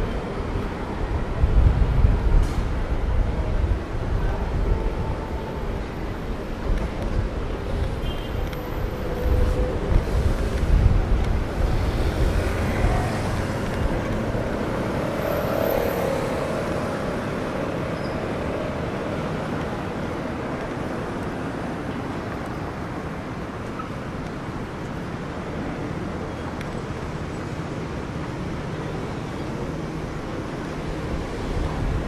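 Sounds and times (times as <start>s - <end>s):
passing cars and buses: 0.0s - 32.0s.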